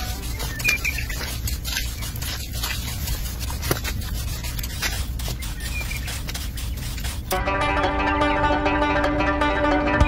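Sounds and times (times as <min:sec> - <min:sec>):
trowel scraping wet cement: 0:00.0 - 0:07.4.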